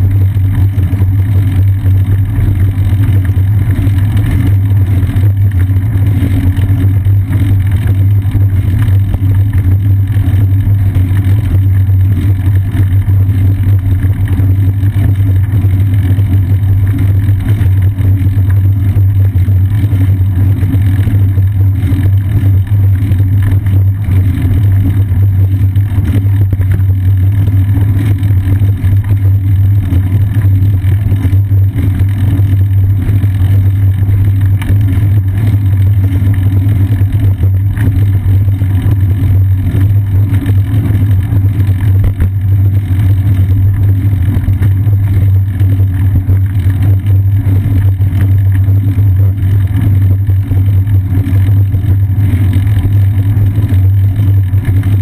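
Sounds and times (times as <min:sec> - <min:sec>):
wind and tyre rumble: 0:00.0 - 0:55.0.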